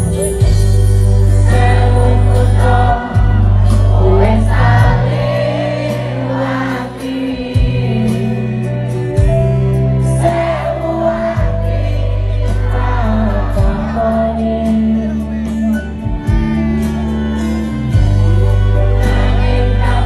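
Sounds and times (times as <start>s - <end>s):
man singing into a microphone: 0.0s - 9.4s, 10.0s - 16.9s
crowd singing along: 0.0s - 20.0s
live band playing pop song: 0.0s - 20.0s
sustained bass notes: 0.0s - 20.0s.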